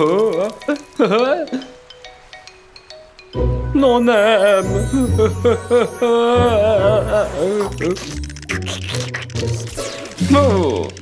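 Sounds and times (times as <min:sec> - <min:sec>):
light background music: 0:00.0 - 0:11.0
cartoon voice wordless sounds: 0:03.8 - 0:11.0.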